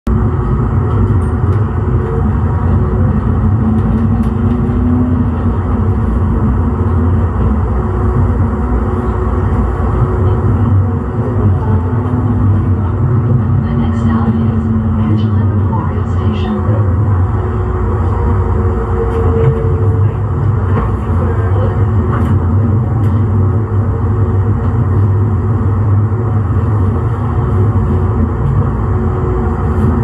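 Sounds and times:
light rail vehicle rumbling: 0.1 - 30.0.

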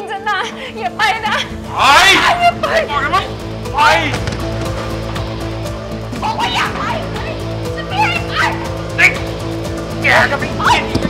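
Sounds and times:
dramatic music with low drone: 0.0 - 11.0.

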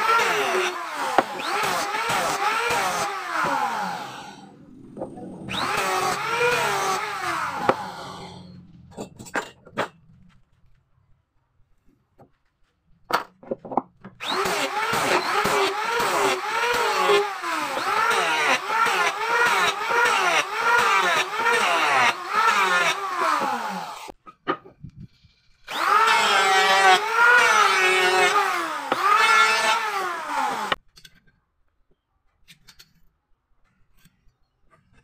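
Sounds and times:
electric hand planer running: 0.0 - 8.8, 14.2 - 24.1, 25.7 - 30.8.

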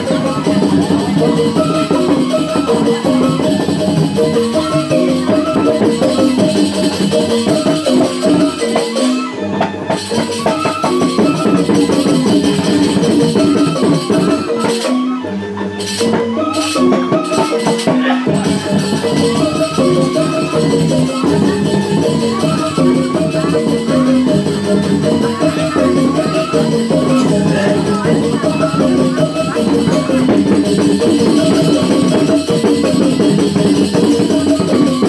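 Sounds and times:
gamelan music: 0.0 - 35.0
rattling percussion: 0.0 - 35.0
ringing metallophone notes: 0.0 - 35.0.

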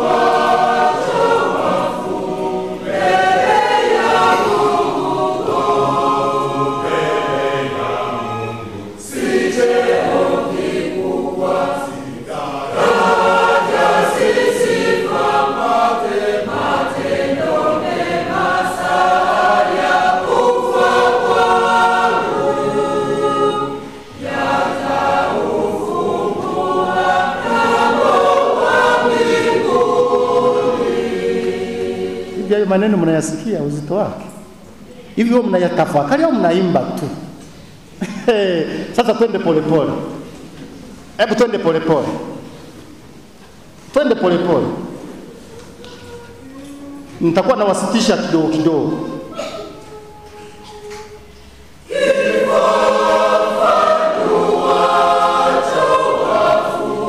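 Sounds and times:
church choir singing a hymn: 0.0 - 57.0.

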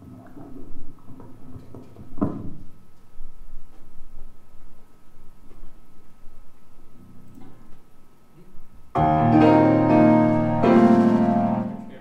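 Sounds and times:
low instrument notes: 9.0 - 12.0.

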